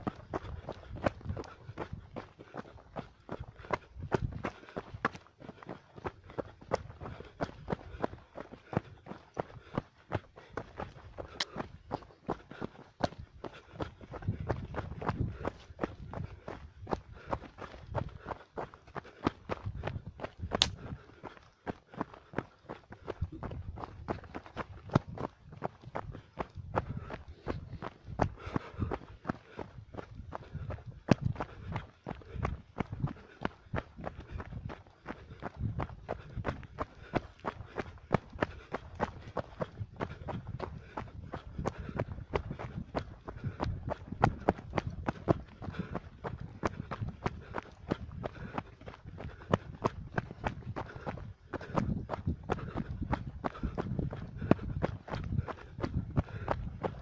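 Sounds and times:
running footsteps on dirt: 0:00.0 - 0:57.0.

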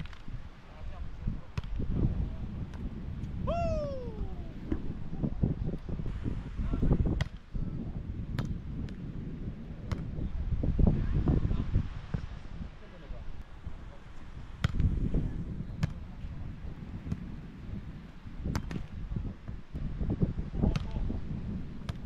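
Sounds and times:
volleyball slapped by hands: 0:01.6 - 0:01.9, 0:07.1 - 0:07.4, 0:08.3 - 0:09.0, 0:09.8 - 0:10.2, 0:14.6 - 0:15.0, 0:15.8 - 0:16.1, 0:17.0 - 0:17.3, 0:18.4 - 0:19.6, 0:20.6 - 0:21.0.

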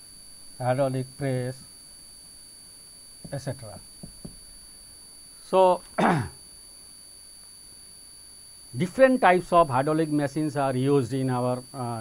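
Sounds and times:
high-pitched electronic whine: 0:00.0 - 0:06.6, 0:08.4 - 0:12.0
man coughing: 0:05.9 - 0:06.4.

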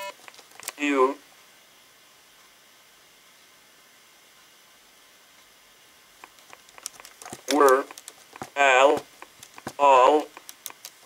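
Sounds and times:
faint clicks: 0:06.2 - 0:11.0.

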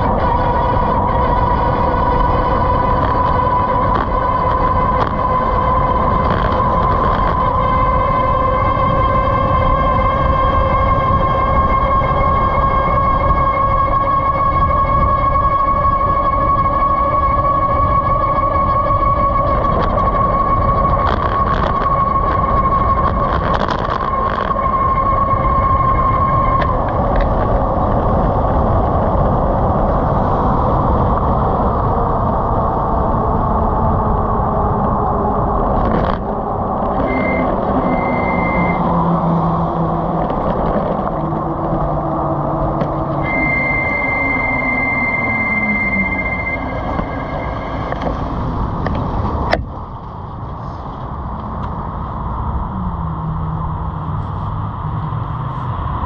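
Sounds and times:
electric motor whine: 0:00.0 - 0:49.7
lower whine falling in pitch: 0:00.0 - 0:56.0
road noise: 0:00.0 - 0:56.0
wind rush: 0:00.0 - 0:56.0.

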